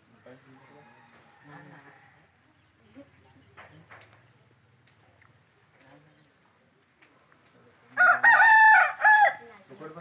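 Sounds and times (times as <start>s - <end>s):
rooster crowing: 8.0s - 9.4s.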